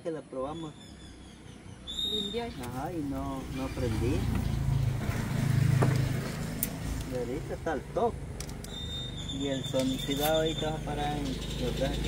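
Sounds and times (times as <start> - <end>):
motorcycle engine revving: 2.3 - 12.0.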